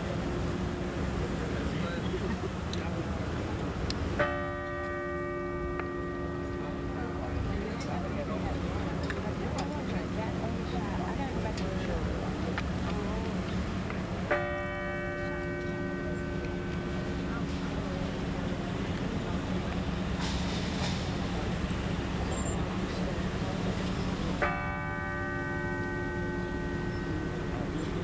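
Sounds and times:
crowd murmur: 0:00.0 - 0:28.0
large bell tolling: 0:04.2 - 0:08.4, 0:14.2 - 0:18.4, 0:24.4 - 0:28.0.

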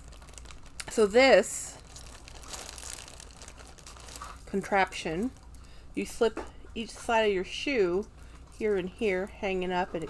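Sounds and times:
plastic packaging crinkling: 0:00.0 - 0:05.7.

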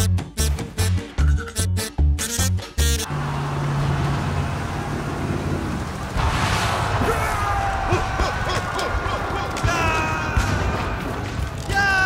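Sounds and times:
boat engines rumbling: 0:03.0 - 0:11.7.

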